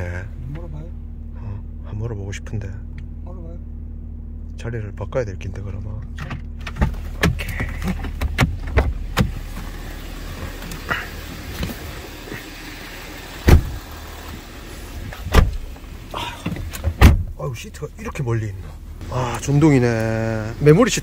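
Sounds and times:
steady low hum: 0.0s - 21.0s
clicks and knocks in car: 6.0s - 9.7s
heavy car door thuds: 13.4s - 13.8s, 15.2s - 15.7s, 16.4s - 17.4s.

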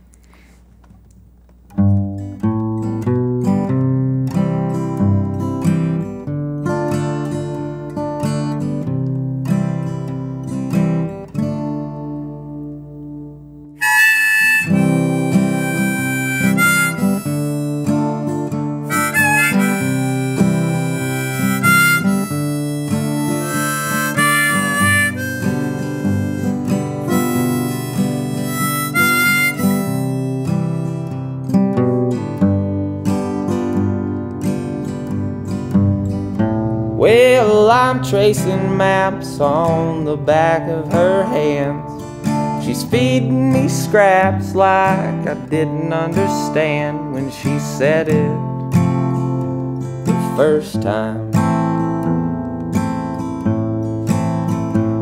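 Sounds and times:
acoustic guitar chords: 1.2s - 55.0s
harmonica melody: 13.8s - 32.2s.

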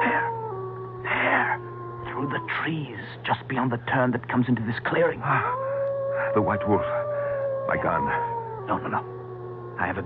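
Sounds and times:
wolf howl: 0.0s - 3.0s, 5.3s - 10.0s.

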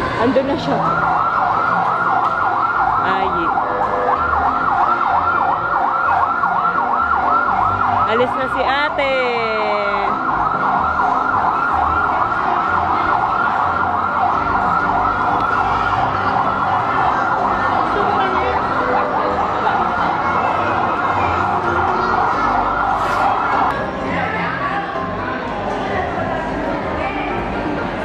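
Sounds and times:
electronic siren yelp: 0.6s - 8.5s, 9.6s - 23.7s
falling siren chirp: 0.7s - 8.5s, 9.6s - 23.7s.

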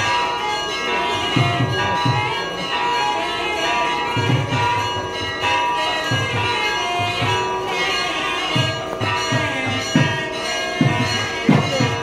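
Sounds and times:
low beats: 0.0s - 3.2s
bells ringing together: 0.0s - 12.0s.

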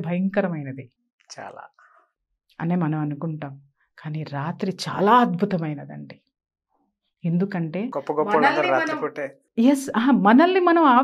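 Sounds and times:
woman talking: 0.0s - 0.8s, 2.6s - 6.2s, 7.2s - 11.0s
soft voice sound: 8.0s - 9.3s.

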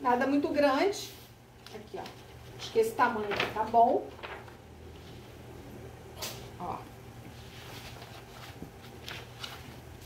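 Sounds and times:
fabric and paper rustling: 1.1s - 5.4s, 7.3s - 10.0s.

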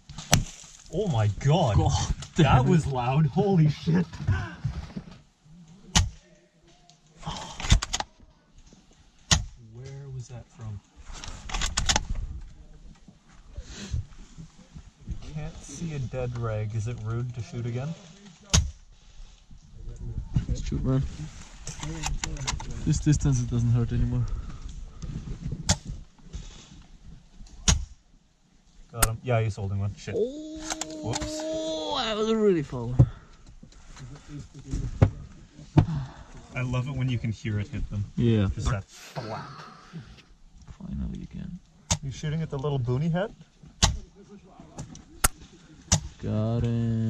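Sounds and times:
low voice: 30.2s - 32.0s, 39.1s - 40.2s.

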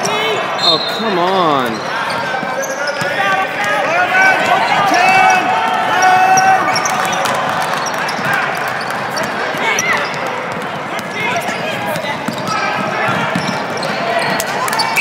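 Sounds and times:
voices calling out: 0.0s - 15.0s.

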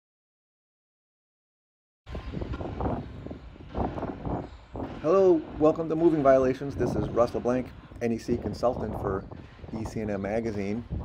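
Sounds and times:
low rumble of traffic and wind: 2.1s - 11.0s.

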